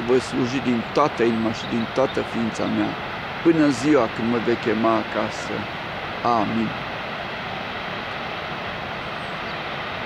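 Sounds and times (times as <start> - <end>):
waterfall rushing: 0.0 - 10.0.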